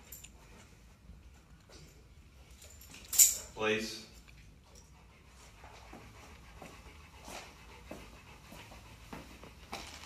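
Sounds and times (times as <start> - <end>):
dog panting softly: 4.4 - 9.8.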